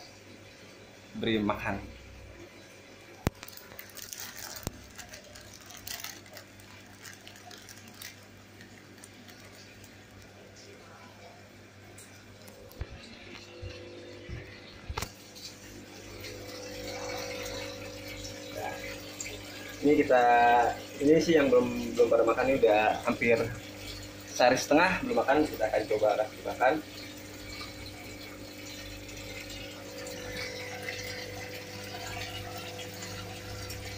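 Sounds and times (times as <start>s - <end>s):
aquarium water splashing: 0.0s - 33.9s
steady hum with tones: 0.0s - 33.9s.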